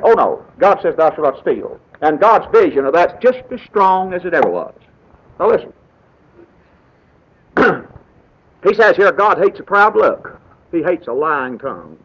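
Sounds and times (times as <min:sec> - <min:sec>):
recording hiss: 0:00.0 - 0:12.0.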